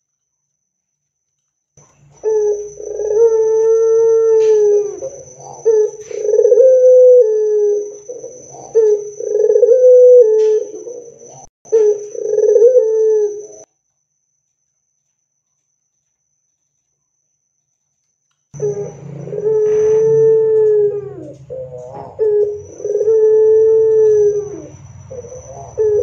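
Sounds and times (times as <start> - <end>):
dove cooing: 2.2 - 13.6, 18.6 - 26.0.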